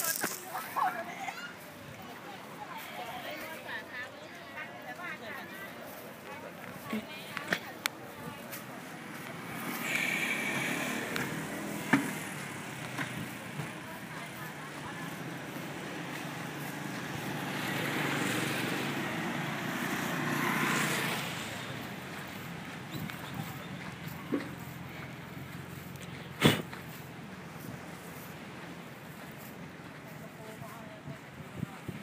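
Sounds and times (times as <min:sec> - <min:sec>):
street background: 0:00.0 - 0:32.0
vehicles passing: 0:00.0 - 0:32.0.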